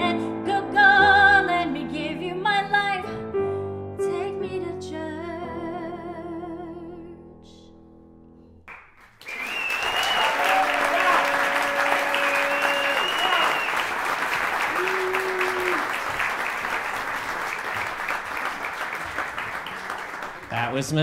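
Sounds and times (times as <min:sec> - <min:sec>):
audience applauding: 0:08.7 - 0:21.0
cheers and whistles: 0:09.2 - 0:16.1.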